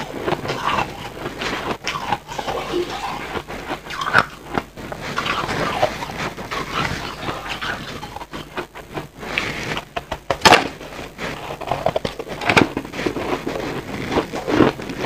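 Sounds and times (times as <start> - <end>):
chewing and crunching ice: 0.0 - 15.0.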